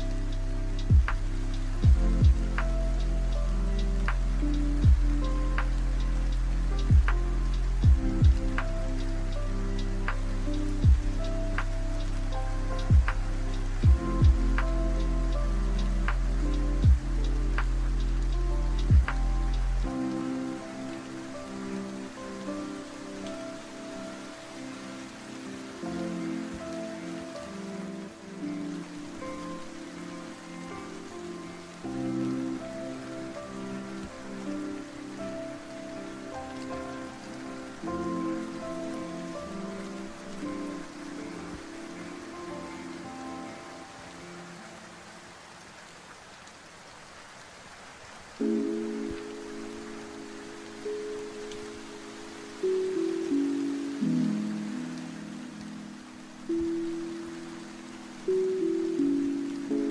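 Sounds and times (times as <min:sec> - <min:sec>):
chill lofi music: 0:00.0 - 0:59.9
steady rain: 0:00.0 - 0:59.9.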